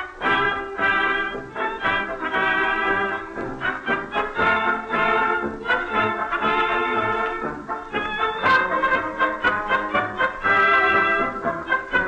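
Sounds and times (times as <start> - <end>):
dance orchestra with brass: 0.0 - 12.0.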